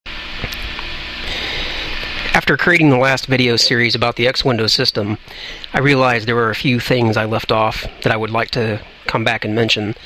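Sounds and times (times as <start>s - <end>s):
background hiss: 0.7s - 10.0s.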